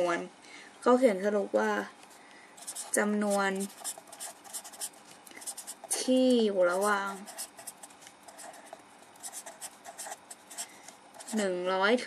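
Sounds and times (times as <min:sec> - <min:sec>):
woman speaking: 0:00.0 - 0:02.0, 0:02.7 - 0:03.9, 0:05.9 - 0:07.5, 0:11.2 - 0:12.0
pen writing on paper: 0:02.6 - 0:06.0, 0:06.7 - 0:11.4.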